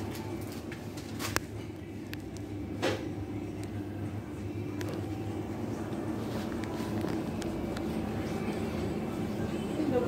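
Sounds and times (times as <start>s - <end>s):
low machinery hum: 0.0s - 10.0s.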